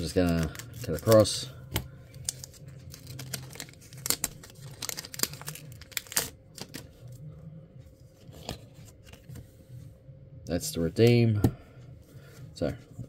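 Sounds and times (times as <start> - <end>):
foil wrapper crinkling and tearing: 0.0 - 1.4, 2.1 - 6.9.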